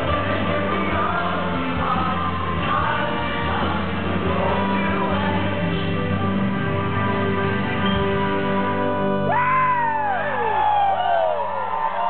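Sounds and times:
audience whooping and cheering: 9.3 - 12.0.

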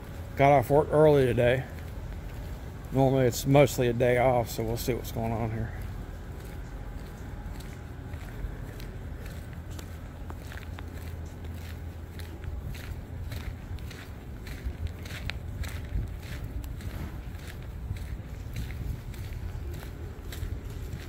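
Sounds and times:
footsteps on sandy pavement: 0.0 - 21.0
steady low rumble: 0.0 - 21.0.

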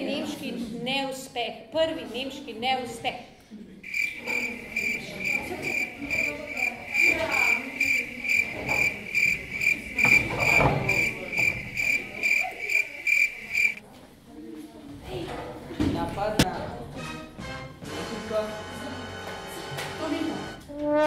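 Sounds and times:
cricket chirping: 3.8 - 13.8.

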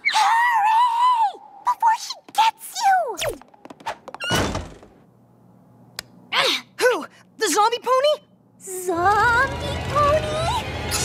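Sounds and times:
low room hum: 0.0 - 11.0
cartoon door slam: 4.2 - 5.0.

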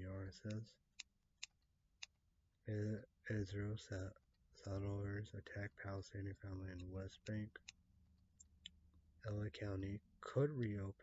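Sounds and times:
man speaking: 0.0 - 0.8, 2.6 - 7.7, 9.2 - 11.0.

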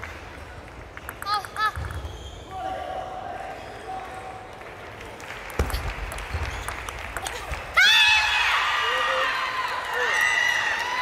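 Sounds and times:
high-pitched shouts and cheering: 7.3 - 11.0.

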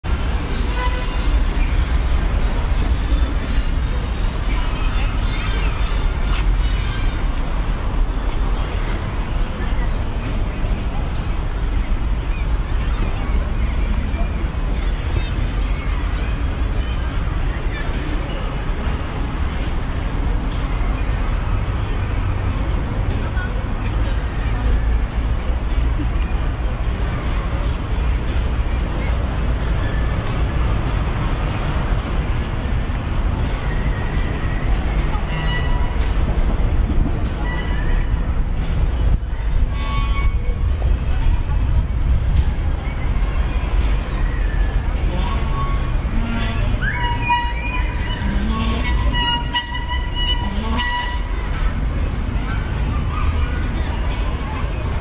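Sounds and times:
low rumble of road traffic: 0.0 - 55.0
voices of people passing: 0.0 - 55.0
children calling: 2.8 - 7.9, 42.6 - 55.0
adult voices: 42.5 - 55.0.

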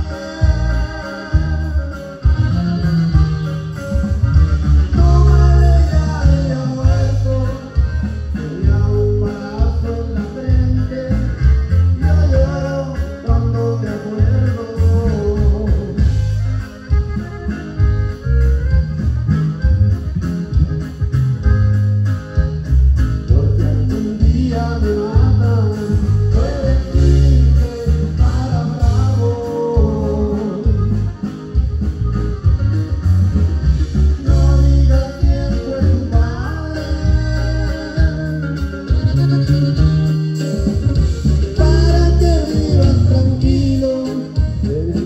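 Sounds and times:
guitar: 0.0 - 45.0
heavy bass line: 0.0 - 45.0
live band playing dance music: 0.0 - 45.0.

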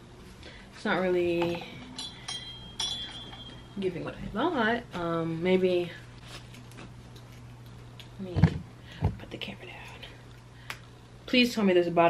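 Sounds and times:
light metallic clinks: 1.4 - 4.0.

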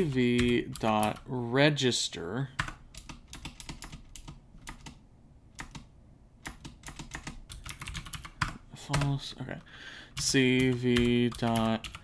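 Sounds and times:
computer keyboard typing: 0.0 - 1.3, 2.6 - 12.0.

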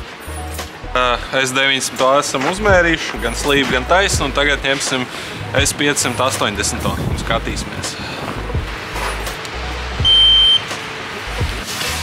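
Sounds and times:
background music with beat: 0.0 - 1.3, 2.4 - 12.0
high electronic beep: 10.0 - 10.6.

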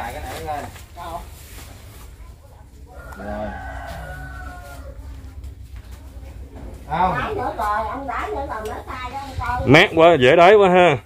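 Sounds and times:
rooster crowing: 2.9 - 5.2.

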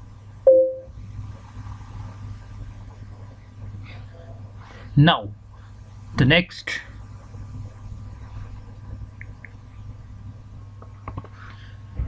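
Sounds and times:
low electrical hum: 0.0 - 12.0
short tone blip: 0.5 - 0.9.

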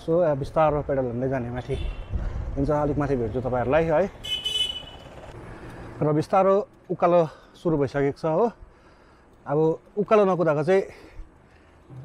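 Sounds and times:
faint road and wind noise: 0.0 - 12.0
vehicle horn toot: 4.2 - 5.2.

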